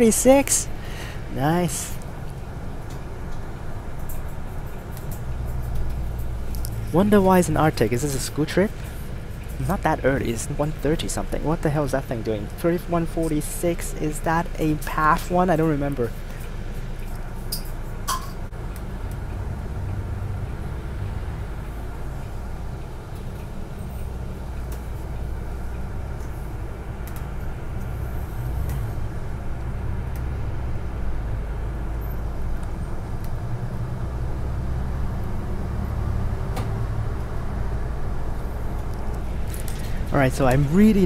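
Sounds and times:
bus engine and road drone: 0.0 - 41.0.

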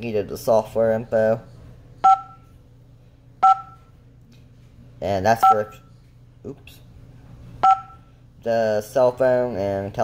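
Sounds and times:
two-tone key-press beeps: 2.0 - 2.4, 3.4 - 3.8, 7.6 - 8.0.

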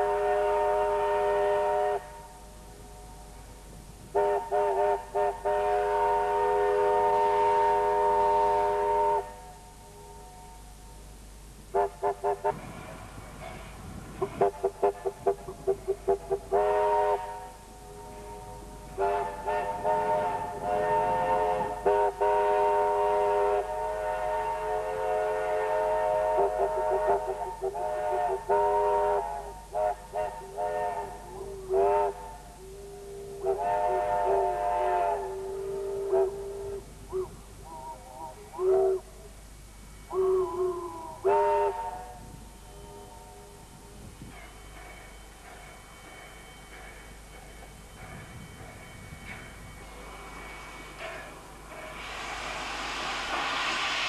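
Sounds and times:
steam locomotive whistle: 0.0 - 3.4, 4.1 - 10.8, 11.7 - 39.3, 40.1 - 44.0, 49.7 - 54.0.

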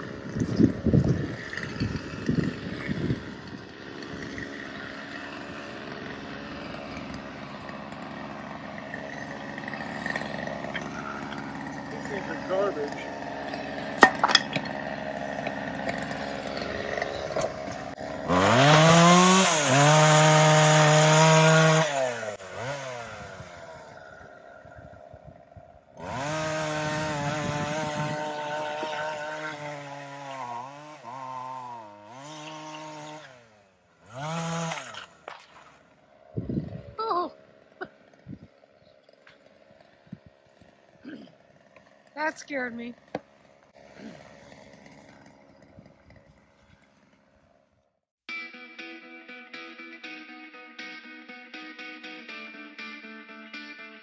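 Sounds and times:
chainsaw revving: 0.0 - 47.7.

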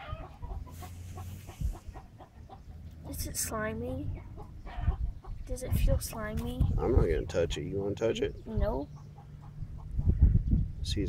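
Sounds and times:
chickens clucking: 0.0 - 3.3, 4.0 - 10.6.

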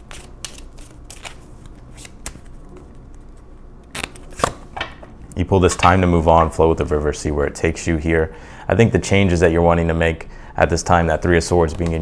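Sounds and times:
cards being shuffled: 0.0 - 4.6.

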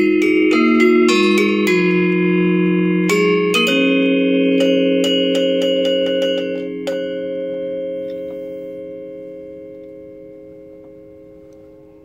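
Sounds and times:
metallophone struck with mallets: 0.0 - 12.0.

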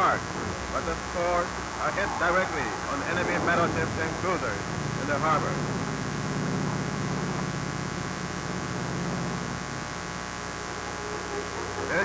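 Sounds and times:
aircraft engines droning: 0.0 - 9.8
constant hiss: 0.0 - 12.0.

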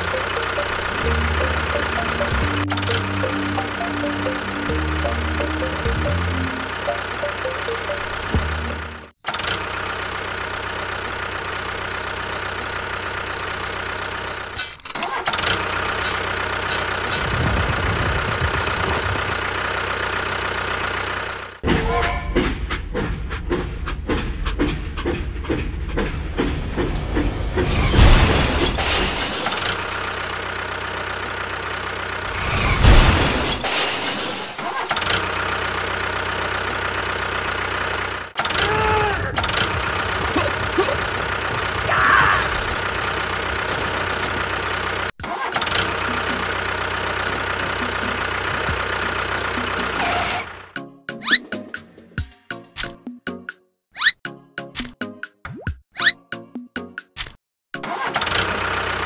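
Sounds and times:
tractor engine running: 0.0 - 52.3, 58.1 - 59.0.

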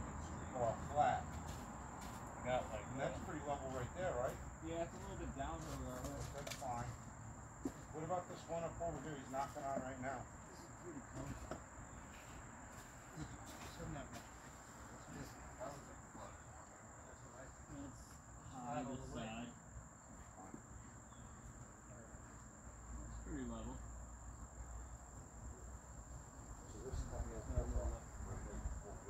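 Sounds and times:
faint distant voices: 0.0 - 24.0, 24.6 - 29.0.

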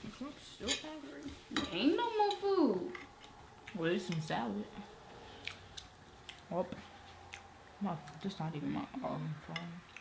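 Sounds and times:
chewing fried chicken: 5.1 - 8.3.

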